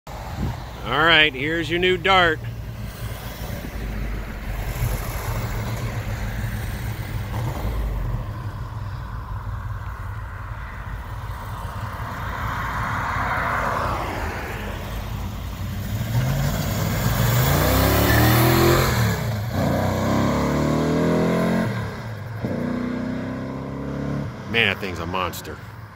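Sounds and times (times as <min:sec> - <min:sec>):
car engine accelerating through gears: 0:15.6 - 0:24.6.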